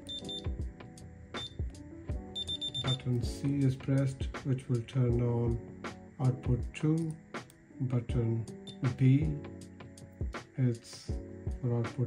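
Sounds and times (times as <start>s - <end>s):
background music: 0.0s - 12.0s
short high-pitched electronic beeps: 0.1s - 0.5s, 2.4s - 3.0s.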